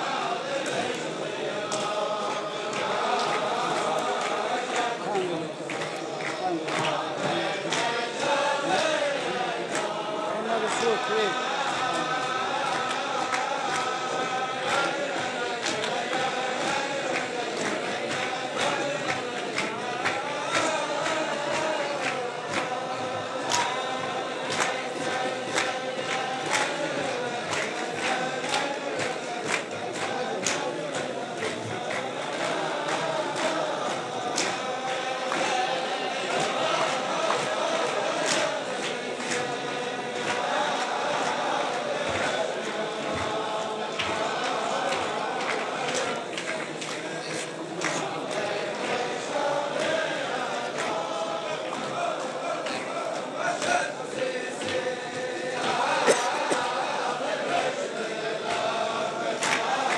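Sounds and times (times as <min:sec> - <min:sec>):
crowd of men singing: 0:00.0 - 0:59.9
sharp rhythmic beats: 0:00.0 - 0:59.9.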